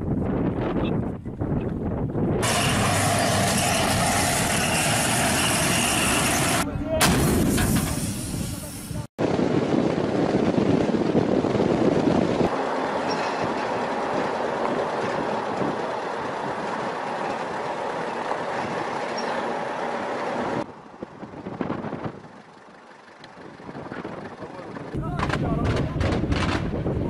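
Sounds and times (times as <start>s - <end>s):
wind noise on microphone: 0.0s - 5.4s, 6.4s - 12.5s, 13.1s - 17.4s, 20.5s - 22.4s, 23.4s - 27.0s
vehicle driving at speed: 9.7s - 25.0s.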